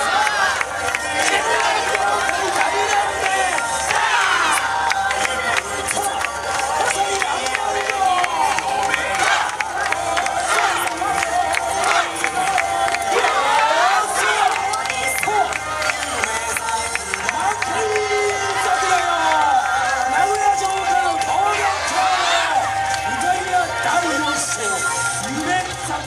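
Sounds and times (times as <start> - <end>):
dance music: 0.0 - 26.0
voices chanting and shouting: 0.0 - 26.0.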